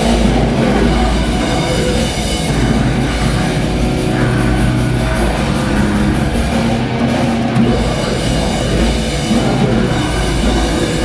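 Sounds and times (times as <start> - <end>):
death metal band playing: 0.0 - 11.0
distorted guitars and bass: 0.0 - 11.0
drums: 0.0 - 11.0.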